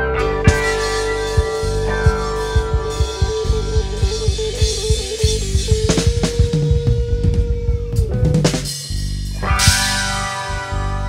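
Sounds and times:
sharp drum or cymbal hit: 0.0 - 7.7, 8.4 - 11.0
bass drum and bass: 0.0 - 11.0
guitar melody: 0.0 - 11.0.

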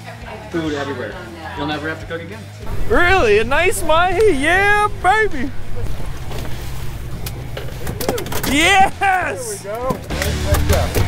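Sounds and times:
water noise: 2.7 - 10.1
wind: 2.7 - 10.2
boat motor rumbling: 2.7 - 11.0.

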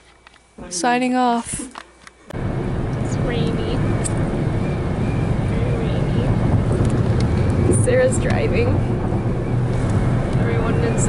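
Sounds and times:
low road rumble inside car: 2.3 - 11.0.

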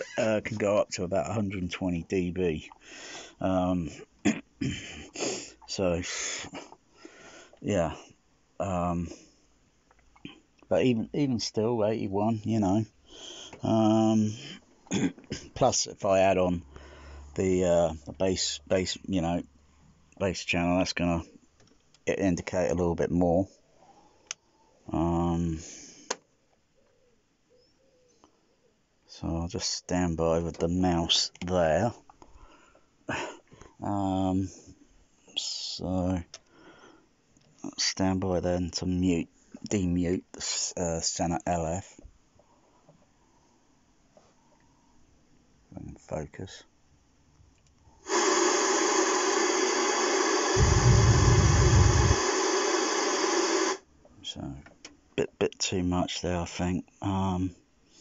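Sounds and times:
loud test noise hiss: 48.0 - 53.9.

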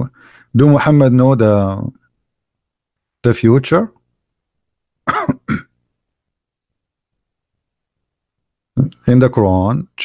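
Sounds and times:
man clearing throat: 5.1 - 5.8.

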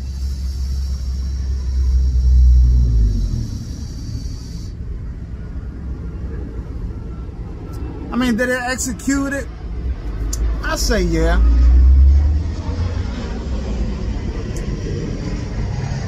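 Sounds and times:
vape coil hissing: 0.0 - 4.8
low rumble: 0.0 - 8.2, 9.5 - 16.0.

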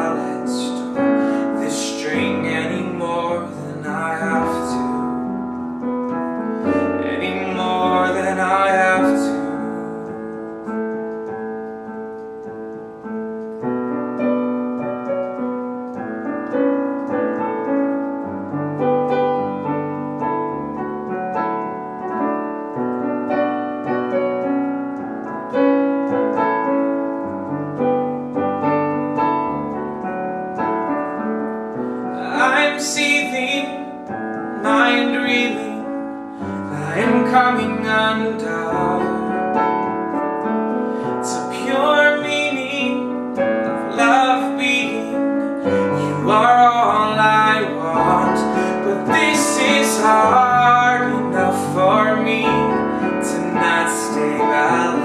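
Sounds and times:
person singing wordlessly: 0.0 - 5.4, 6.7 - 10.1, 32.1 - 39.9, 41.0 - 55.0
electric piano chords: 0.0 - 55.0.

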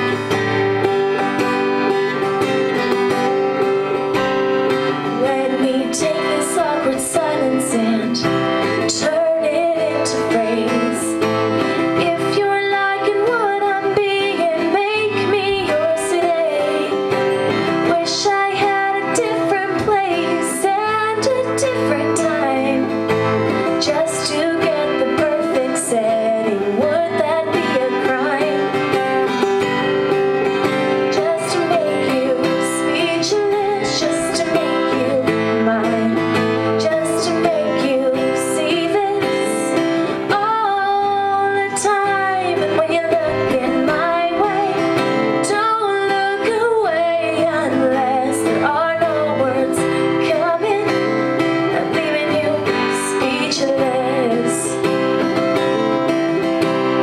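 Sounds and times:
strummed acoustic guitar: 0.0 - 57.0
woman singing: 0.0 - 57.0.

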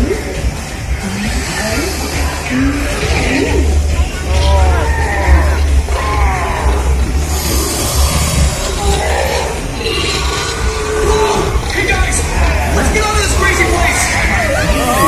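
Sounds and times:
steady low rumble: 0.0 - 15.0
theme park ride music: 0.0 - 15.0
vocal calls: 0.0 - 15.0.

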